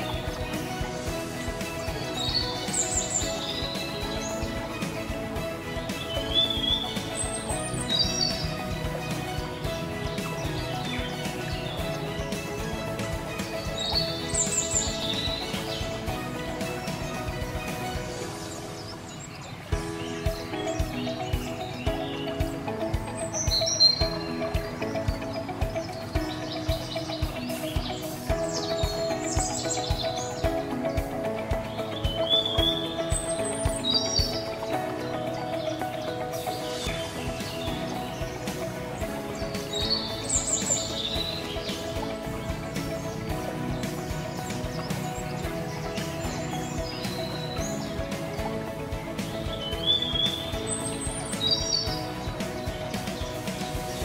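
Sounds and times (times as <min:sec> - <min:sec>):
bird chirps: 0:00.0 - 0:54.0
instrumental music with soft beat: 0:00.0 - 0:54.0.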